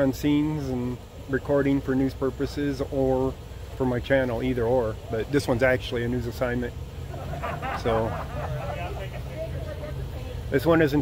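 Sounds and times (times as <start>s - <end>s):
vehicle idling hum: 0.0s - 11.0s
faint talking: 7.2s - 11.0s.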